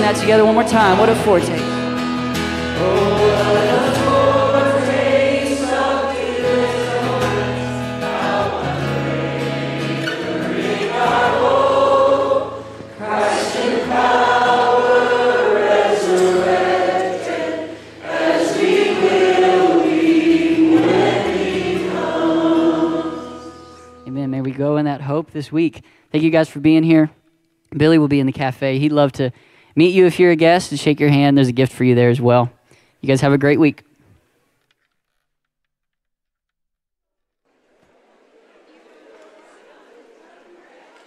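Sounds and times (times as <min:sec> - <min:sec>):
acoustic guitar: 0:00.0 - 0:35.2
congregation singing a hymn: 0:00.3 - 0:24.1
man leading singing: 0:02.6 - 0:24.7.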